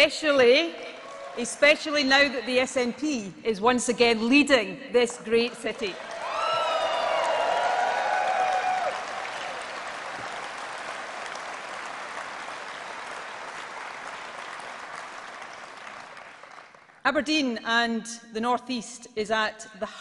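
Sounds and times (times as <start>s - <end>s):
audience applauding: 5.9s - 17.0s.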